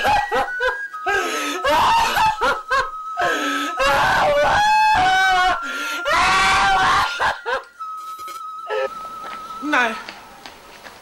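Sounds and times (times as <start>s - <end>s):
woman wailing and sobbing: 0.0s - 7.7s, 8.7s - 8.9s.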